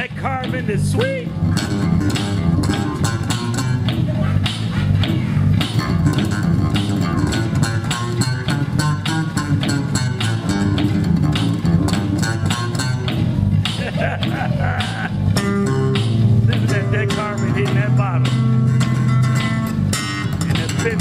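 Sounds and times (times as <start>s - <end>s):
electric bass guitars playing: 0.0s - 21.0s.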